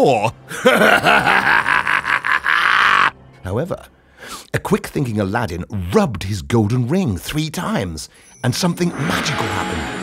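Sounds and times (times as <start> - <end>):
man cackling: 0.6 - 3.2.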